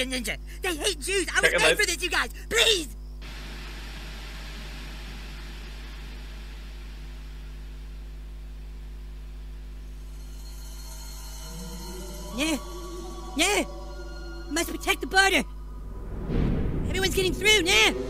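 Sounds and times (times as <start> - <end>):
television static hiss: 0.0 - 10.2
low electrical hum: 0.0 - 16.2.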